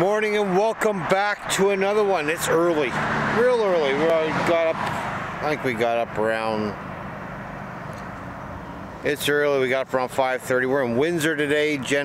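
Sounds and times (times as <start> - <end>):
distant road traffic hum: 0.0 - 12.0.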